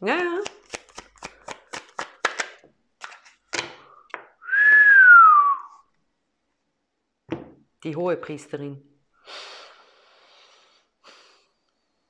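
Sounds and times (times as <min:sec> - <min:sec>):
cards being shuffled: 0:00.4 - 0:04.2
whistled note sliding down: 0:04.4 - 0:05.8.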